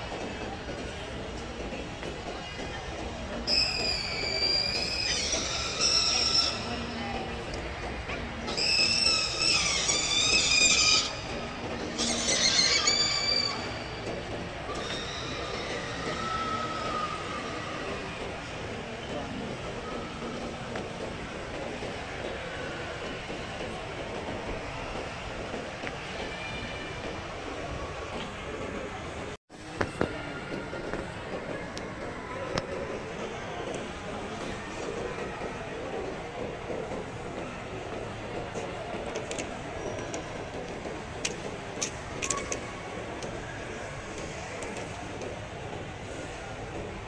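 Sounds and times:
faint distant shoppers: 0:00.0 - 0:47.0.

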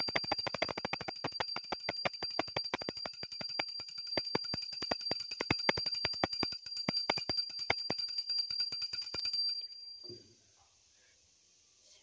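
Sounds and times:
small hand bell ringing rapidly: 0:00.0 - 0:10.0.

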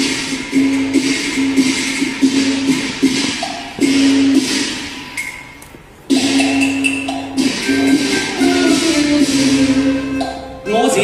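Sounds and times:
percussion: 0:00.0 - 0:11.0
melodic instrument holding long notes: 0:07.6 - 0:11.0.

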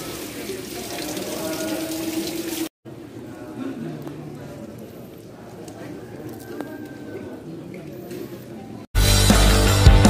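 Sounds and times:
water running: 0:00.0 - 0:02.8
people's voices: 0:00.0 - 0:08.9.

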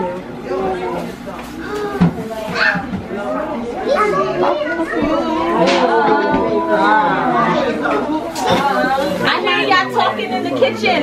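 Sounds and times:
voices chattering indistinctly: 0:00.0 - 0:11.0.

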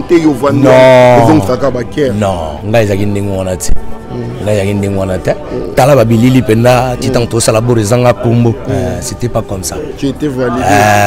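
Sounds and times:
man speaking: 0:00.0 - 0:11.0
quavering vocal sound: 0:10.4 - 0:11.0.

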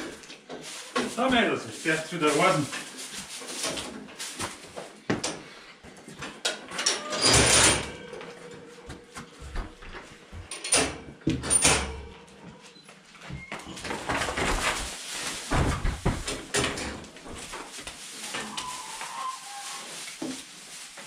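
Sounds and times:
calves rattling feed barrier: 0:13.4 - 0:21.0.

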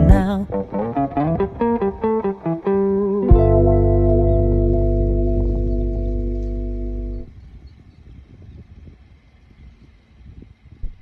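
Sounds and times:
guitar music: 0:00.0 - 0:07.3
held music chord: 0:00.0 - 0:07.3
low outdoor rumble: 0:00.0 - 0:11.0.

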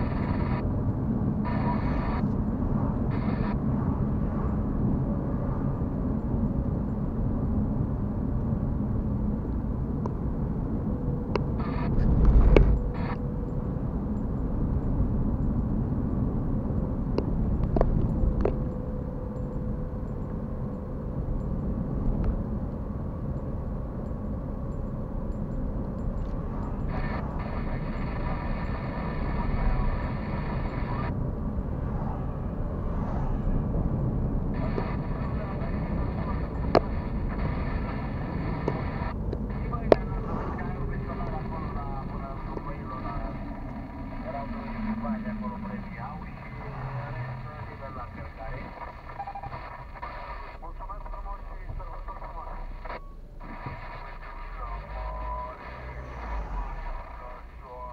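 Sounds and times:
car engine and road rumble: 0:00.0 - 0:57.9.

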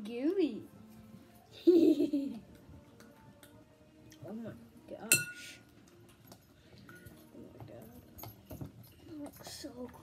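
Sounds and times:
stirring clicks in bowl: 0:02.6 - 0:04.3
glass bowl clink: 0:05.0 - 0:05.6.

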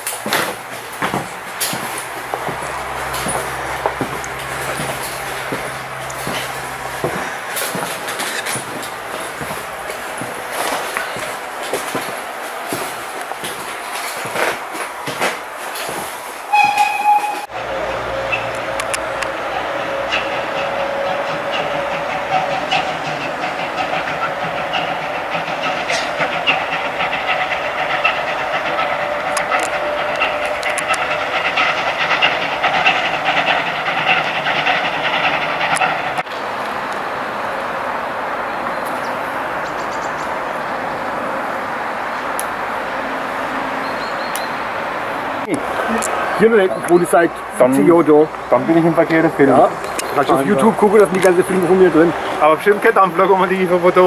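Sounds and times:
train rumble and rail clatter: 0:00.0 - 0:54.0
high ringing tone: 0:16.5 - 0:21.1.

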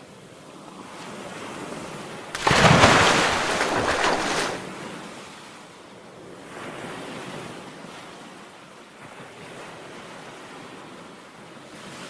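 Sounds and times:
wind: 0:00.0 - 0:12.0
sea surf washing in: 0:02.4 - 0:04.8.

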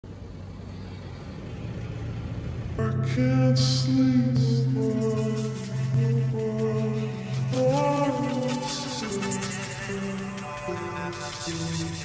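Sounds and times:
ambient electronic intro: 0:00.1 - 0:12.0.

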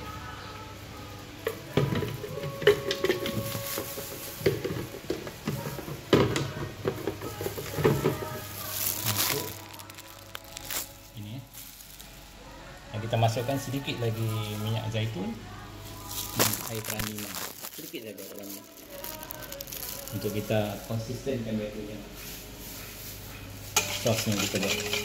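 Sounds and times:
plastic rustling: 0:01.7 - 0:15.2, 0:15.8 - 0:21.5, 0:22.2 - 0:25.0
plastic kitchenware knocking and clattering: 0:01.8 - 0:08.3.

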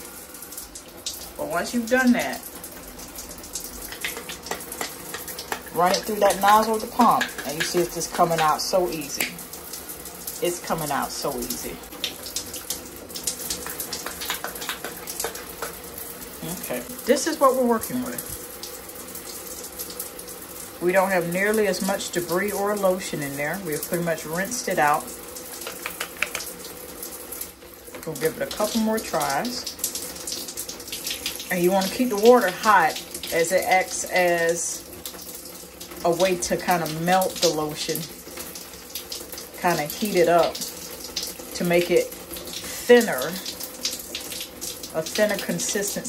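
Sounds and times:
running water splashing: 0:00.0 - 0:46.0
water splashing over plastic bottle: 0:01.3 - 0:10.2, 0:10.9 - 0:16.1, 0:25.6 - 0:26.7.

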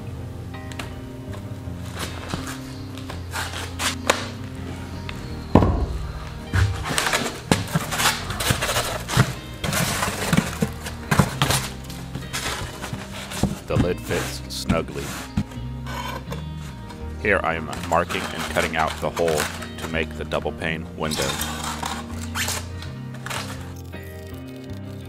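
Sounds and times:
background music: 0:00.0 - 0:25.0
loud thump: 0:05.5 - 0:07.6
foam-board lid knocking and scraping: 0:05.6 - 0:16.7, 0:17.6 - 0:20.2.

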